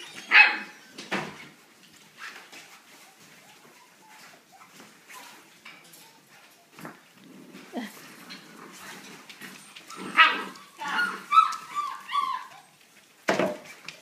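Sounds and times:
puppies yipping and whining: 0.0s - 1.6s, 2.2s - 6.8s, 8.1s - 13.1s.

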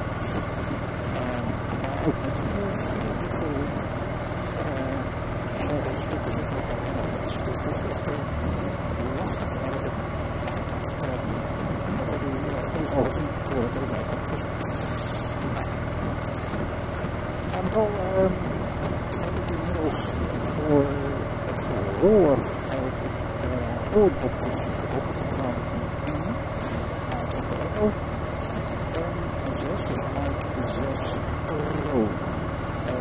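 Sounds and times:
motorcycle engine running: 0.0s - 33.0s
road and wind noise: 0.0s - 33.0s.

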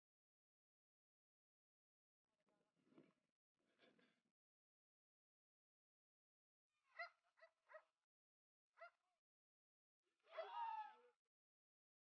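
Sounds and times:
faint high-pitched animal calls: 10.3s - 11.2s.

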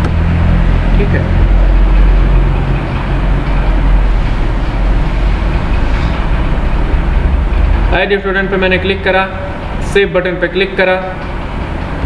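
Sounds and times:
low mechanical rumble with hum: 0.0s - 12.0s.

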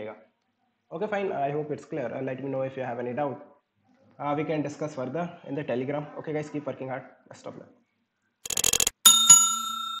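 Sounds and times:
rapid clicks: 8.5s - 9.0s
bright bell ding: 9.0s - 10.0s.

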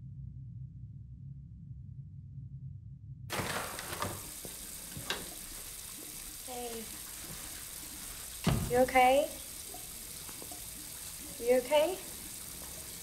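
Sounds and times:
paper towel rustling: 3.3s - 8.4s
restroom room tone hiss: 3.3s - 13.0s
woman's voice: 6.5s - 6.9s, 8.6s - 9.4s, 11.4s - 12.1s
low thump: 8.4s - 8.8s.

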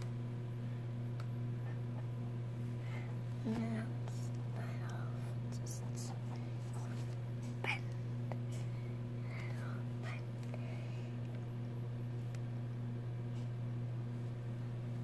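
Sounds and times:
low electrical hum: 0.0s - 15.0s
soft whispering: 3.4s - 11.2s.

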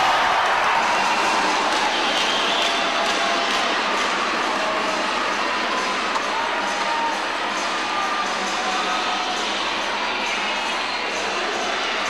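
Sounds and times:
arena crowd voices and shouting: 0.0s - 12.0s.

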